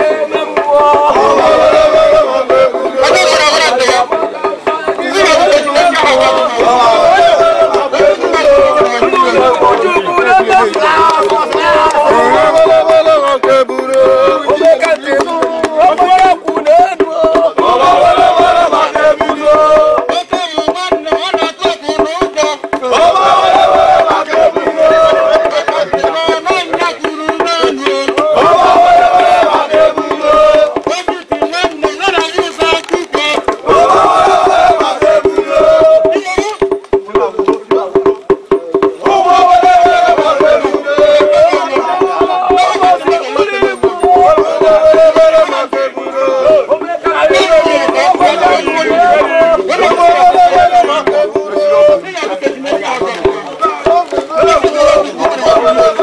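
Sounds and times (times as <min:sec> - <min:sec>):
crowd noise: 0:00.0 - 0:56.0
drums and percussion: 0:00.0 - 0:56.0
voices chanting: 0:00.0 - 0:56.0.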